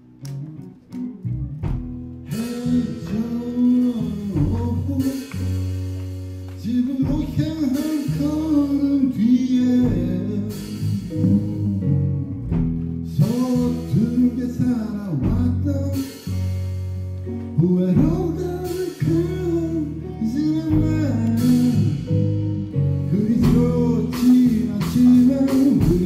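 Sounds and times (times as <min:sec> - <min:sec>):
live rock band: 0:00.0 - 0:26.0
person singing: 0:02.2 - 0:16.6, 0:17.3 - 0:26.0.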